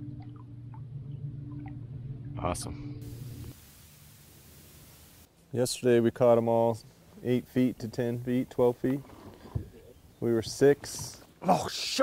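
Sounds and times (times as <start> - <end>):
steady low hum: 0.0 - 8.9
water lapping against boat: 8.9 - 10.1.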